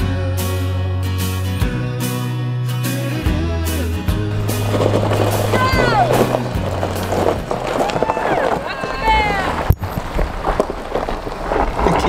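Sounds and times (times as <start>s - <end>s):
background music: 0.0s - 7.8s
vehicle driving on gravel: 4.0s - 12.0s.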